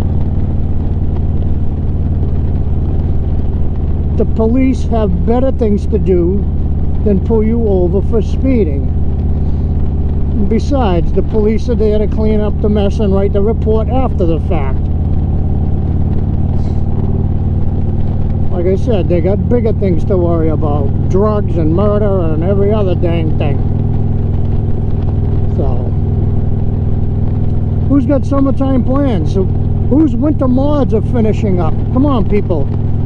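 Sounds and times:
motorcycle engine droning: 0.0 - 33.0.

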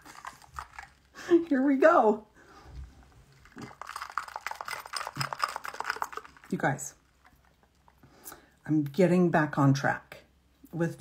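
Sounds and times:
sipping through a straw: 3.0 - 6.6.

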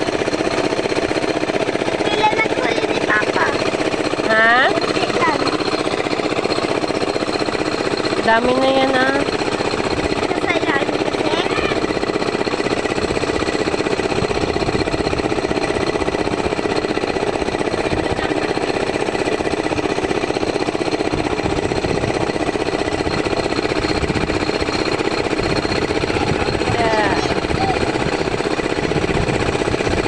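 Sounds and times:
boat engine knocking: 0.0 - 30.0.

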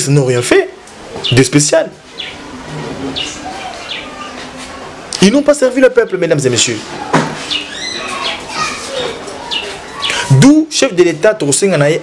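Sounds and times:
children calling and shouting: 0.0 - 12.0
distant children's voices: 0.1 - 12.0.

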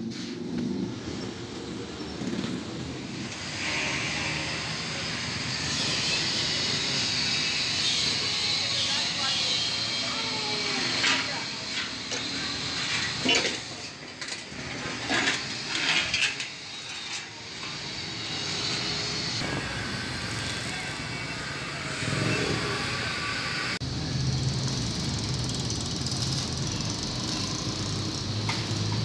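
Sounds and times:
metal sheet clanks and scrapes: 12.8 - 17.8.

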